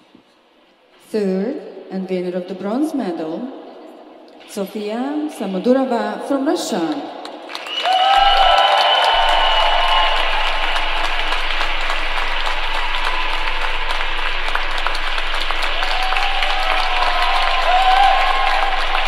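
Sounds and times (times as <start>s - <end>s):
audience applauding: 7.2s - 19.0s
voices cheering: 7.5s - 19.0s.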